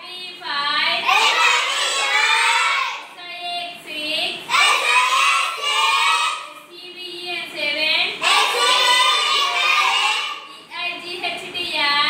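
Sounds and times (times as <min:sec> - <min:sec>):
young children singing together: 0:01.0 - 0:03.1, 0:04.4 - 0:06.7, 0:08.2 - 0:10.6.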